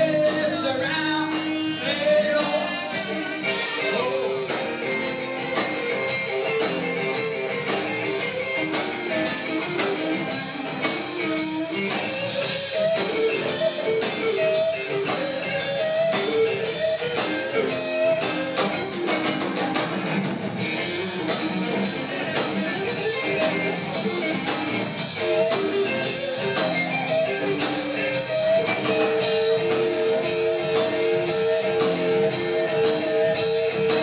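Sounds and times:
drum kit beat: 0.0 - 34.0
electric guitar: 0.0 - 34.0.

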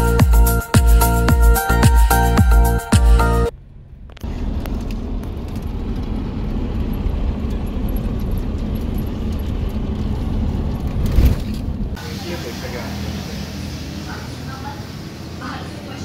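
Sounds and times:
car engine and road rumble: 3.4 - 15.7.

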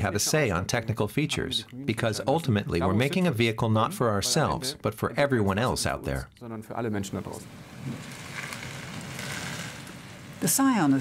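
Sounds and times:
outdoor background noise: 7.0 - 11.0.

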